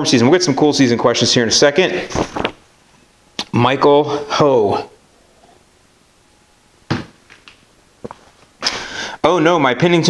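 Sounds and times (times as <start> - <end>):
breathy exhale: 8.6 - 9.2.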